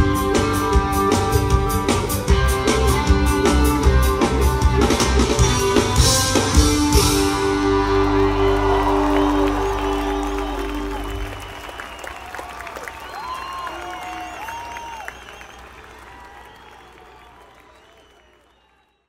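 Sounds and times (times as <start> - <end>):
rock band chord ringing: 0.0 - 11.6
audience cheering and whistling: 6.0 - 19.0.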